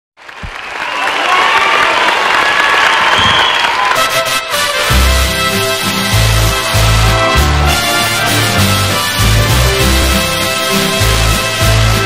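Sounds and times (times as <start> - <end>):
audience applauding and cheering: 0.2 - 12.0.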